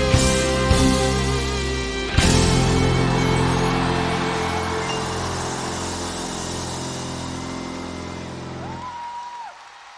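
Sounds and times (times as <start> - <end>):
rock band final chord: 0.0 - 8.6.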